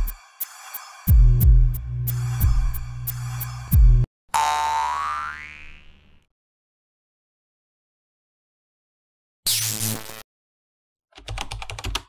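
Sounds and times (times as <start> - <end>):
intro music: 0.0 - 4.1
cartoon boing: 4.3 - 6.0.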